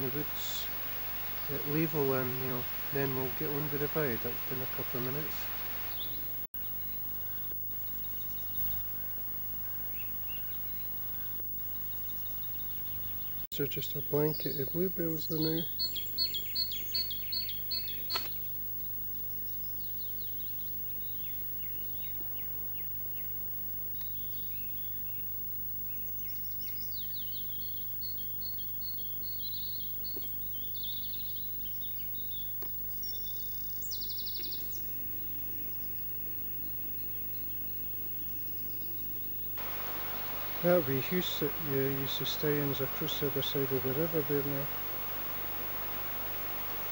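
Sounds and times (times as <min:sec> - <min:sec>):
buzzy bird trill: 0:00.0 - 0:06.4, 0:39.6 - 0:46.9
low background hum: 0:00.0 - 0:28.4, 0:30.5 - 0:46.9
songbirds chirping: 0:00.0 - 0:35.4, 0:38.8 - 0:46.9.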